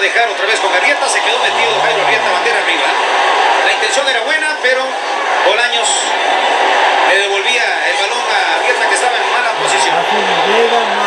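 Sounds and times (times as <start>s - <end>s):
men's voices: 0.0s - 3.0s, 7.2s - 11.0s
stadium crowd noise: 0.0s - 11.0s.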